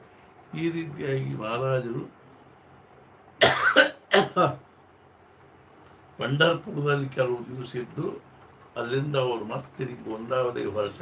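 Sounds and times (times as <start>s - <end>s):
man coughing: 3.4s - 4.6s.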